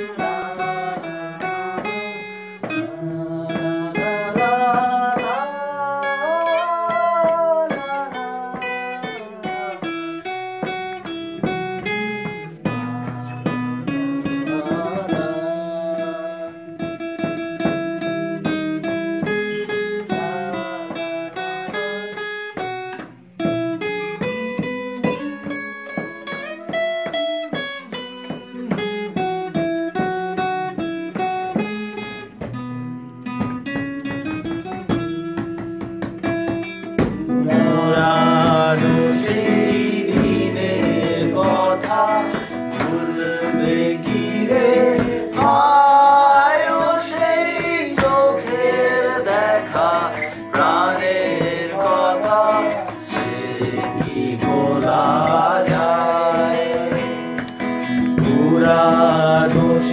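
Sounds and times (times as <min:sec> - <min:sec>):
acoustic guitar plucked notes: 0:00.0 - 0:59.9.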